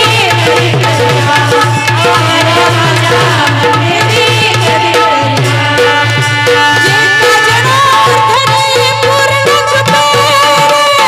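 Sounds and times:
hand drum rhythm: 0.0 - 11.0
harmonium holding steady notes: 0.0 - 11.0.

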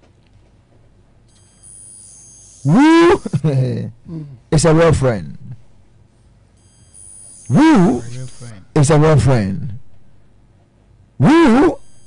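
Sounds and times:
faint low hum: 0.0 - 12.0
high-pitched electronic whine: 1.3 - 3.8, 6.6 - 10.0, 11.2 - 12.0.

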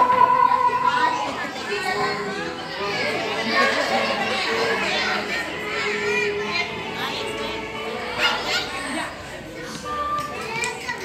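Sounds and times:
children's voices chattering: 0.0 - 11.0.

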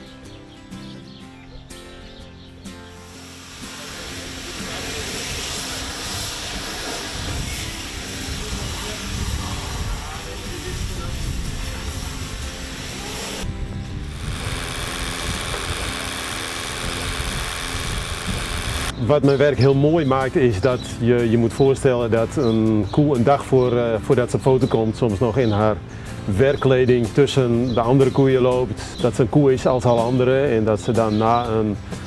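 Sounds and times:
electric clippers buzzing: 3.0 - 8.1, 12.2 - 18.9
pressure hose spraying water: 3.0 - 18.9
tractor running: 12.7 - 18.9.

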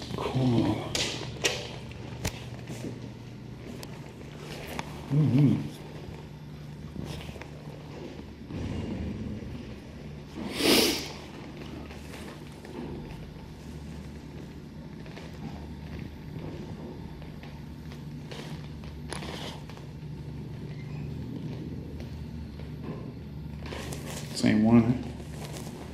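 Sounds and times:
low machine hum: 0.0 - 25.9.

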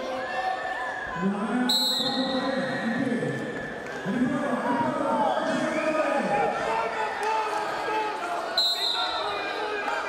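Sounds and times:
referee's whistle blast: 1.7 - 2.8, 8.6 - 9.3.

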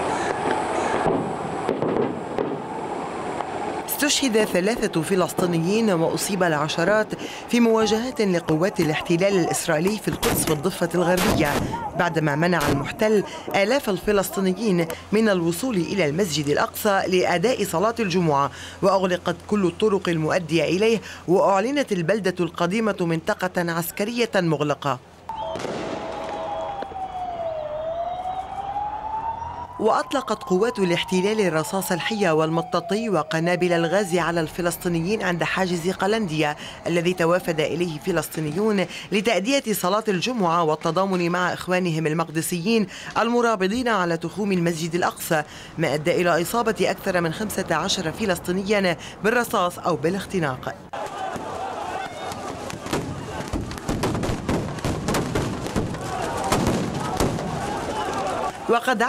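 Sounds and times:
large crowd noise: 0.0 - 15.1, 25.3 - 29.6, 33.3 - 41.4, 50.4 - 59.0
siren wailing: 25.3 - 38.6.

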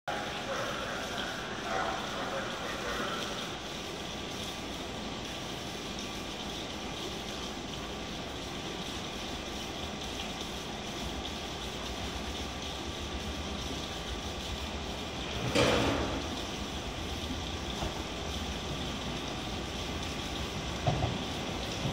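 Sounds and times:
distant train rumbling: 0.1 - 3.6, 14.6 - 21.9
rain hissing: 0.1 - 21.9.

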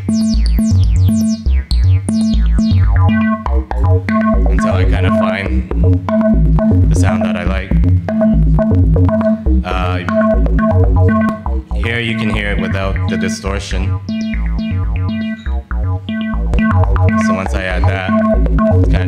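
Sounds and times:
looping synth dance track: 0.0 - 19.0
resonant filter sweeps: 10.0 - 19.0.

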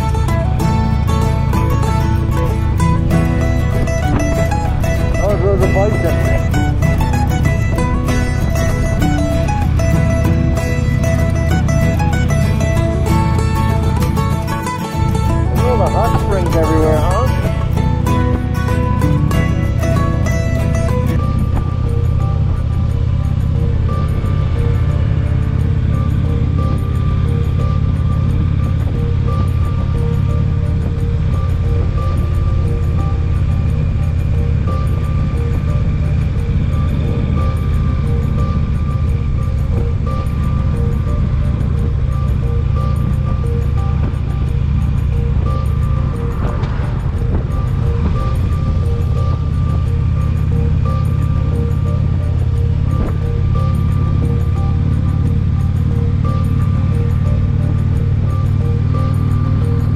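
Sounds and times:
motorcycle engine rumble: 0.0 - 59.9
music playing: 0.0 - 59.9
wind rushing over microphone: 0.0 - 59.9.

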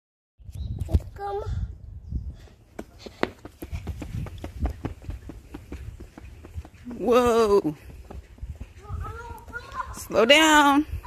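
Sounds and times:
running footsteps on concrete: 2.7 - 11.0.

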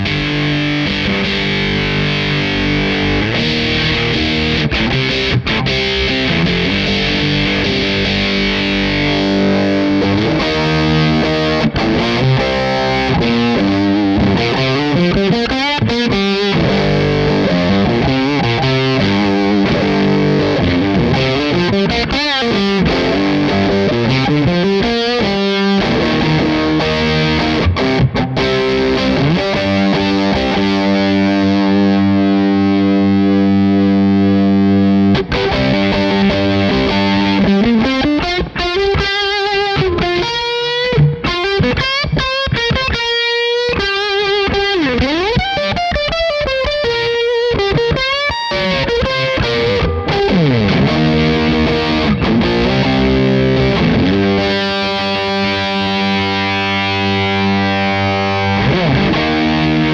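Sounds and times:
fuzz electric guitar: 0.0 - 59.9.

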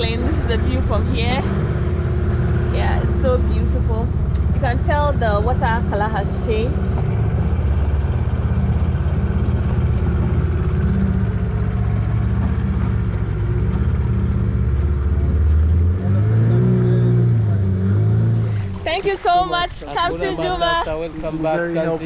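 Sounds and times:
boat outboard motor running: 0.0 - 22.0.

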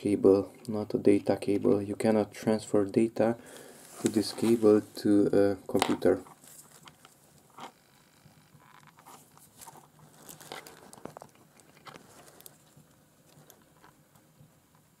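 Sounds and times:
low steady hum: 0.0 - 15.0
clicks and rustles of cable handling: 5.7 - 7.8, 8.5 - 14.9.

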